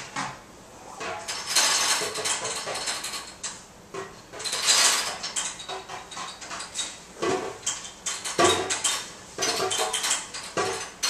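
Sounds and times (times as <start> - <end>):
metal objects scraping and rattling: 1.0 - 3.5, 4.3 - 11.0.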